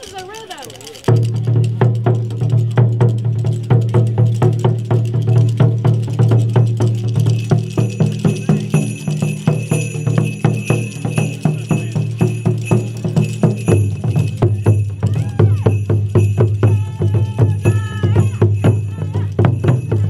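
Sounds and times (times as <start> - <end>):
hand bells jingling: 0.0 - 20.0.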